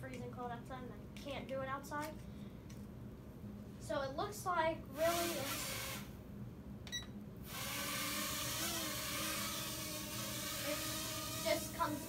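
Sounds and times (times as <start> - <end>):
drone propellers whirring: 7.5 - 12.0.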